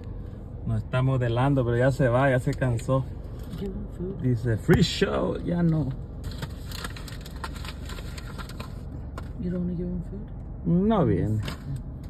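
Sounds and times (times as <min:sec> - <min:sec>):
car rumble: 0:00.0 - 0:12.0.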